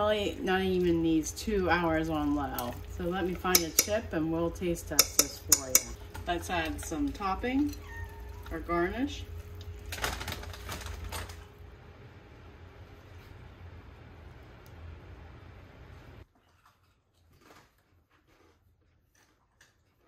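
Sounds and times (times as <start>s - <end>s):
steady low hum: 0.0s - 16.2s.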